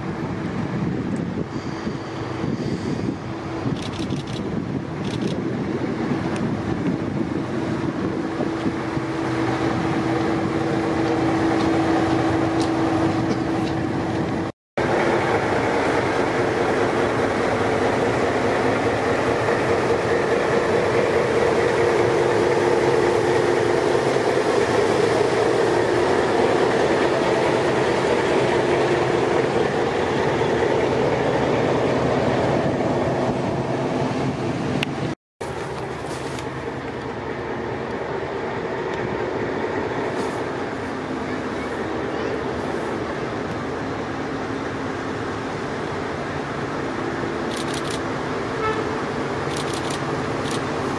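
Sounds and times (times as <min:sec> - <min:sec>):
diesel locomotive running: 0:00.0 - 0:50.9.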